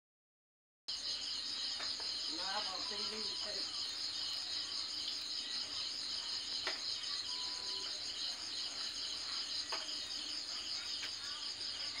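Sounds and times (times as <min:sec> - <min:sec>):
crickets chirping: 0:00.9 - 0:12.0.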